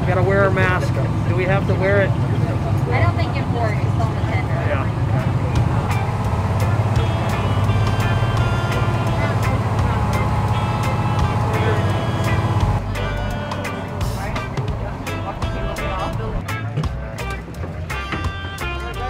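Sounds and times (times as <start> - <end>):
boat engine running: 0.0 - 19.0
background music with a beat: 5.6 - 19.0.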